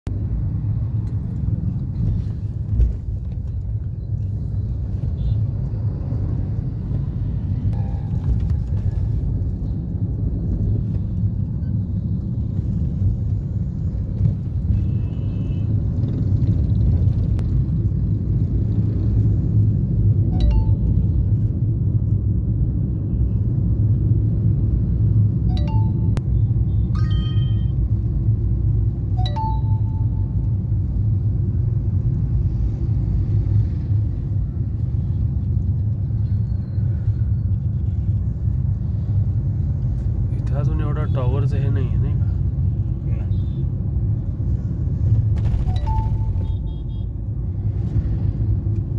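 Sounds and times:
car horn beeps: 0:45.8 - 0:47.2.

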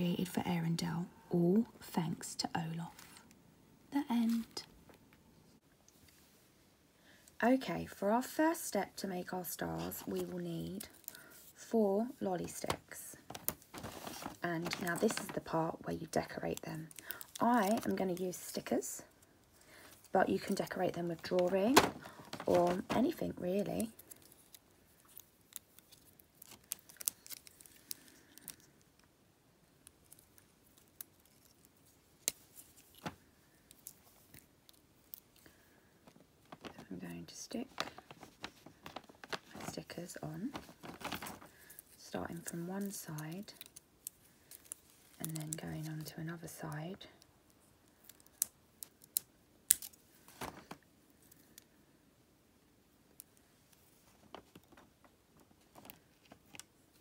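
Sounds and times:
plastic sheet clicks and crinkles: 0:12.4 - 0:18.8, 0:19.7 - 0:29.1, 0:29.8 - 0:46.2, 0:47.9 - 0:51.7, 0:53.2 - 0:57.0.

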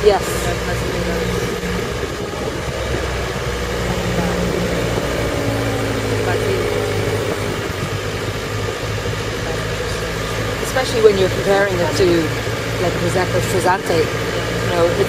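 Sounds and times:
vehicle engine driving: 0:00.0 - 0:15.0
wind and road noise: 0:00.0 - 0:15.0.

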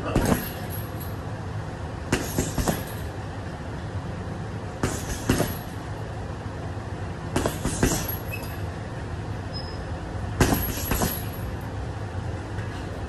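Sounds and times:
gloves punching leather bag: 0:02.1 - 0:03.0, 0:04.8 - 0:05.7, 0:07.3 - 0:08.3, 0:10.4 - 0:11.4.

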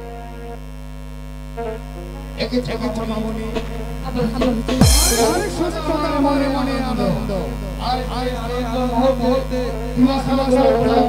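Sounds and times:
music: 0:00.0 - 0:00.7, 0:01.5 - 0:11.0
held musical notes: 0:04.8 - 0:06.9.

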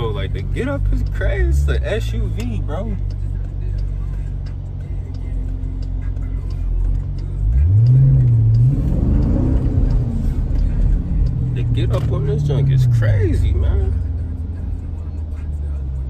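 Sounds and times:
car engine accelerating: 0:00.0 - 0:16.0.

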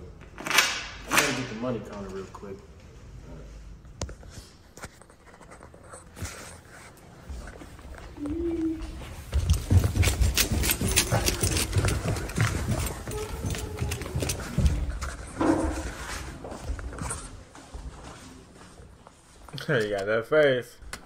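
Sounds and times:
footsteps on tile floor: 0:04.2 - 0:19.6
handheld camera knocks and rumble: 0:09.2 - 0:15.9.

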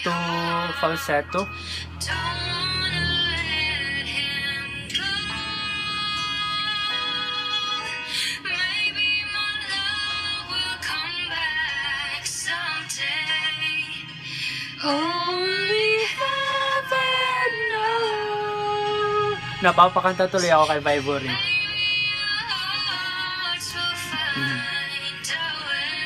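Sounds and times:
woman singing slow ballad: 0:00.0 - 0:19.6, 0:21.3 - 0:26.0
soft musical accompaniment: 0:00.0 - 0:26.0.

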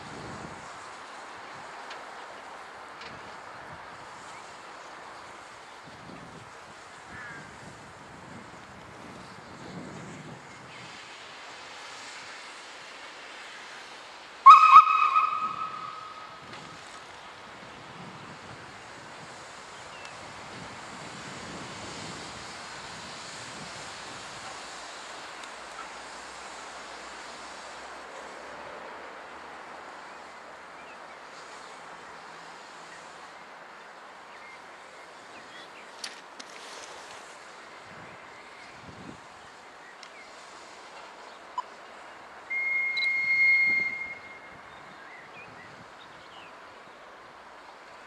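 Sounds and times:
steady background hiss: 0:00.0 - 0:48.0
steam locomotive whistle blast: 0:14.4 - 0:16.4, 0:42.5 - 0:44.7.

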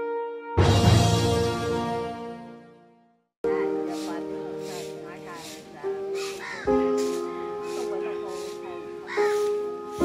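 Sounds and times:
sustained chords background music: 0:00.0 - 0:10.0
birds calling: 0:03.6 - 0:10.0.

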